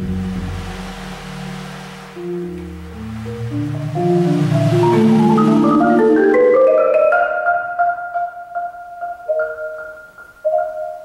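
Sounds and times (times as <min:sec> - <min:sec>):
low marimba notes: 0:00.0 - 0:11.0.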